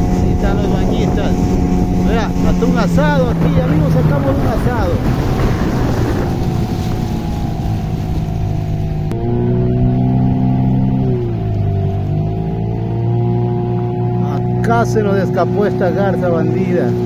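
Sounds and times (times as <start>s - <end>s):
wind noise: 0.0s - 11.8s
outboard motor drone: 0.0s - 17.0s
water noise: 0.0s - 17.0s.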